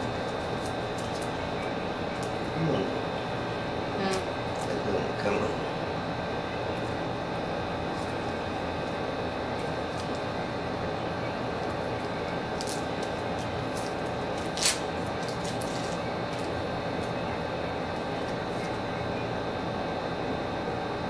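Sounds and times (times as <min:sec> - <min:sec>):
mechanical room hum: 0:00.0 - 0:21.0.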